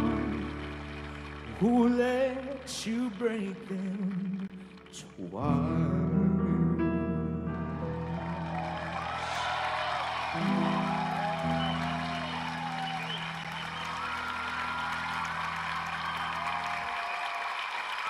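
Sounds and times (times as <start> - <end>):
audience applause: 0.0 - 5.3, 7.8 - 18.0
grand piano chords: 0.0 - 16.9
audience whooping: 7.9 - 18.0.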